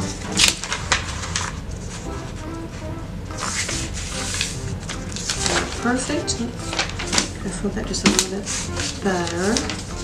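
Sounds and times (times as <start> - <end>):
paper rustling and sliding: 0.0 - 2.4, 3.3 - 7.4, 8.1 - 10.0.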